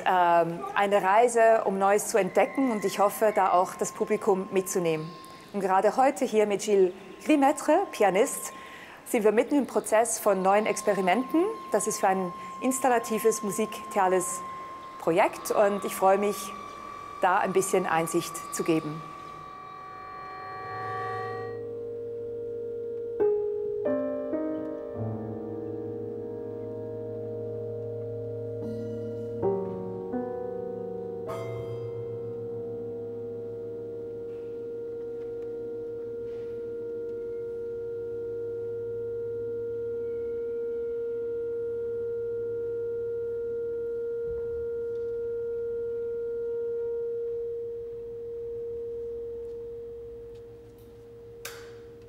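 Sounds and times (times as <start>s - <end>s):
held piano tone: 0.0s - 52.0s
piano chords: 0.0s - 52.0s.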